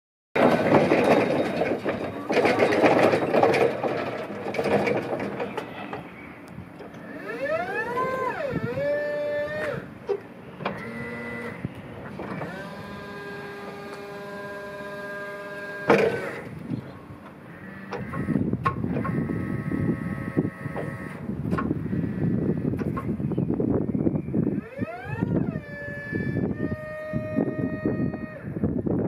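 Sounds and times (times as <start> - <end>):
rough rolling noise: 0.4 - 8.3
electric motor whine: 7.0 - 9.9, 10.6 - 16.6, 17.5 - 21.3, 24.4 - 28.7.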